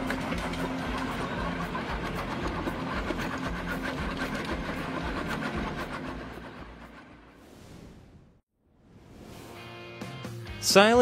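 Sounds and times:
drum cutter grinding tree stump: 0.0s - 7.4s
excavator engine humming: 0.0s - 7.4s.

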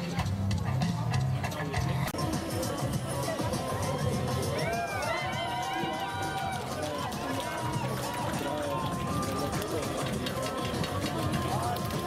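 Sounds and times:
music: 0.0s - 12.0s
voices: 0.0s - 12.0s.

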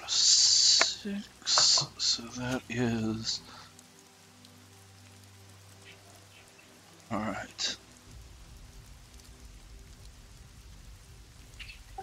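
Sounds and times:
faint rain-like hiss: 0.0s - 12.0s.

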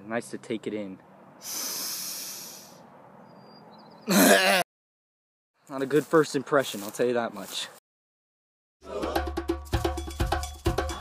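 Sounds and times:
quiet outdoor background noise: 0.0s - 4.6s, 5.6s - 7.8s
person breathing deeply: 1.4s - 2.8s.

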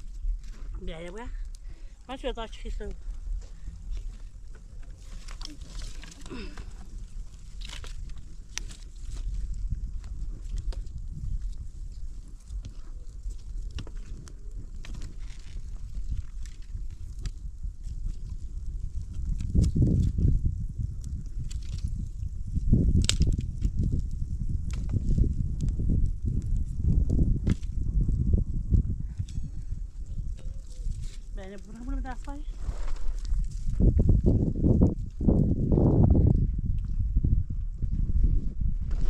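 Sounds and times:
wood fire crackling: 0.0s - 39.0s.

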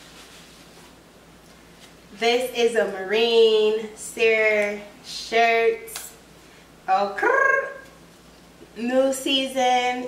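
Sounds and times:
fabric rustling: 0.0s - 1.1s.

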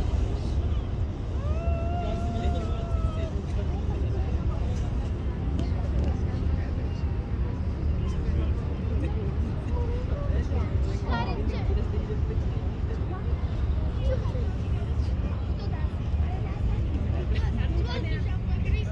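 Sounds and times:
boat engine rumble: 0.0s - 18.9s
people talking: 0.0s - 18.9s.

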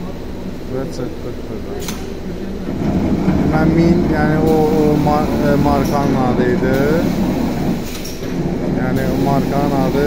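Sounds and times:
low mechanical hum: 0.0s - 10.0s
man speaking: 0.6s - 2.0s, 3.4s - 7.2s, 8.8s - 10.0s.

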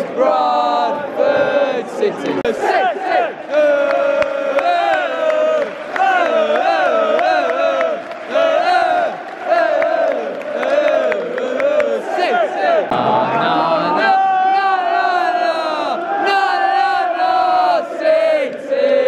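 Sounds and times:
crowd chanting in unison: 0.0s - 19.0s.

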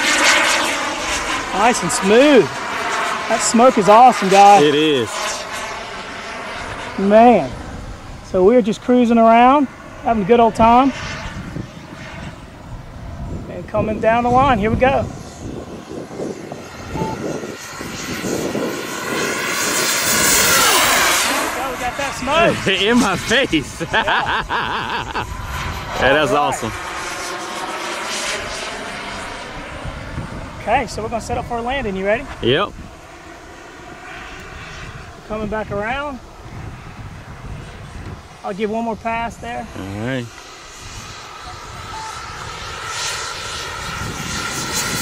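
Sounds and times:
model jet engine whoosh: 0.0s - 45.0s.

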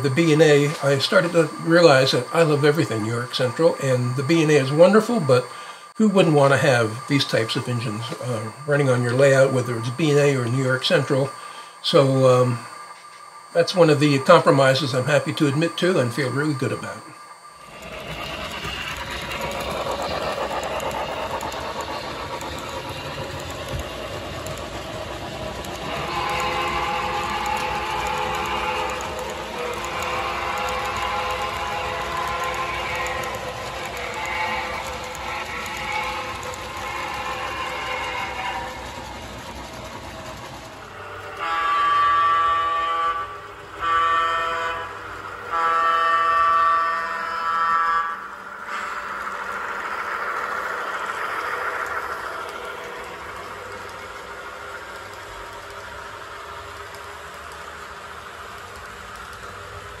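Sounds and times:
model trains rolling: 0.0s - 60.0s
train horn blasts: 25.9s - 33.4s, 41.1s - 49.0s.

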